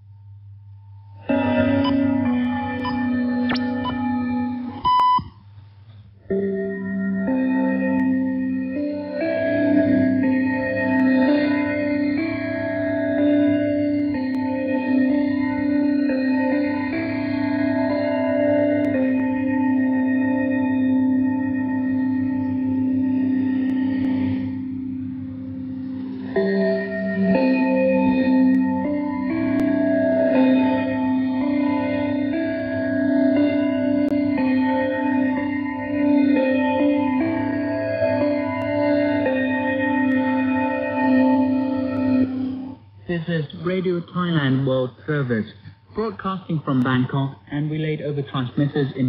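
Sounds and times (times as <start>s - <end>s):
bell-like music over shortwave radio: 1.2s - 5.2s
radio music: 1.3s - 4.1s, 43.1s - 49.0s
high steady beep: 2.8s - 4.1s, 4.8s - 5.3s
radio static: 43.1s - 49.0s.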